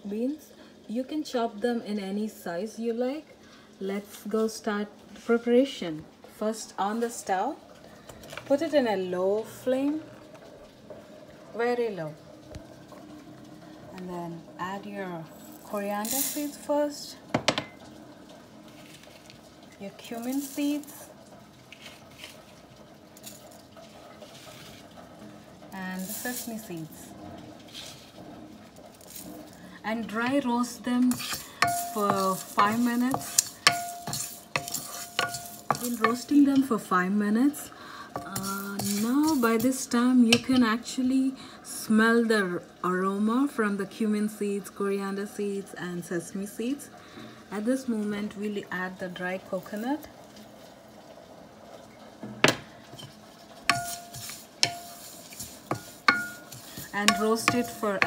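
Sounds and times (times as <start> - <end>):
low steady background noise: 0.0 - 58.0
spatula stirring seeds in pan: 15.3 - 16.7, 20.0 - 21.1, 21.7 - 22.6, 23.2 - 24.9, 25.7 - 27.1, 27.7 - 28.2, 28.8 - 40.9, 52.9 - 58.0
person speaking: 29.8 - 37.6, 38.2 - 41.0, 56.1 - 58.0
pan ringing: 31.2 - 36.8
spatula knocking against pan: 53.7 - 57.8.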